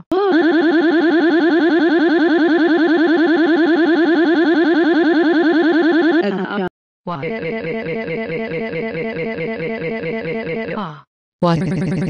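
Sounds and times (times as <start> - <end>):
synthetic voice warbling syllable: 0.0 - 12.0.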